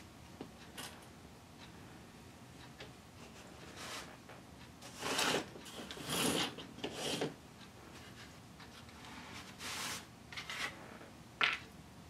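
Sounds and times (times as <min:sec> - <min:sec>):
wooden strips scraping on workbench: 0:04.9 - 0:07.4, 0:09.4 - 0:10.8.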